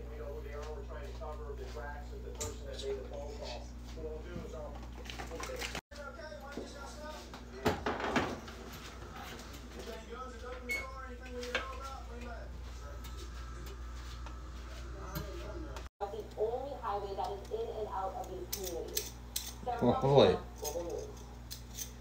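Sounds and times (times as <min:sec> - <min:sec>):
steady low hum: 0:08.3 - 0:22.0.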